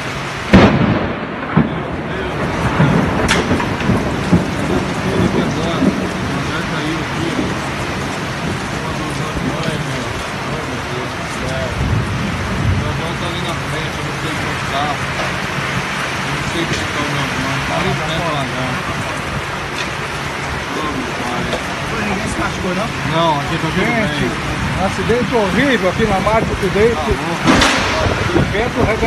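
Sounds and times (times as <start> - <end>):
sharp crack: 0.0 - 11.8, 12.8 - 22.2, 26.7 - 29.0
heavy rain: 0.0 - 29.0
wind: 0.0 - 29.0
loud bang: 0.5 - 6.0, 27.4 - 29.0
low thuds: 0.5 - 17.7, 24.3 - 29.0.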